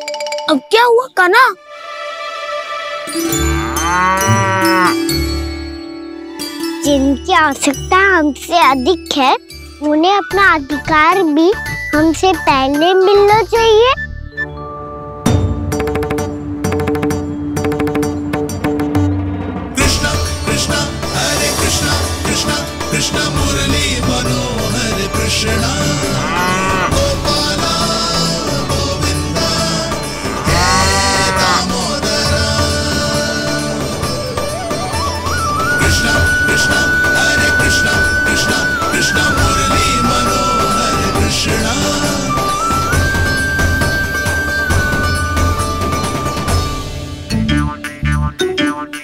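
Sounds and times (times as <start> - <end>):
background music: 0.0 - 49.0
cow mooing: 3.6 - 5.1, 25.8 - 27.0, 30.2 - 31.8.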